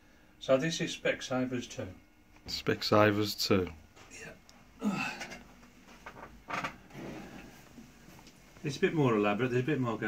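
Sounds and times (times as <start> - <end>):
wooden model scraping on table: 6.6 - 7.6.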